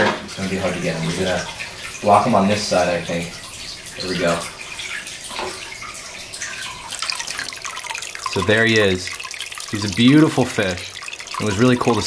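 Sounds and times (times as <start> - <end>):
water splashing in an aquarium: 0.0 - 12.0.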